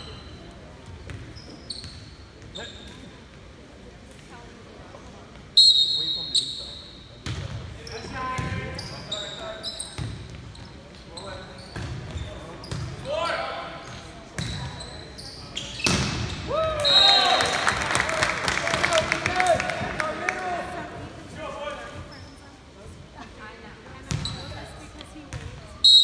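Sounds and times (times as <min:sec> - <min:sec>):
sneakers squeaking: 0:00.0 - 0:03.4, 0:05.7 - 0:13.2, 0:13.8 - 0:17.4, 0:21.7 - 0:22.8, 0:24.0 - 0:26.0
referee's whistle: 0:05.6 - 0:07.0, 0:16.8 - 0:17.5.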